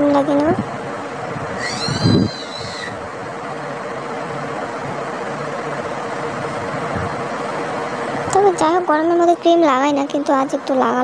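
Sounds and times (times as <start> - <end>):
mechanical whir: 0.0 - 8.9
faint constant hum: 0.0 - 11.0
high squeak: 1.6 - 3.0.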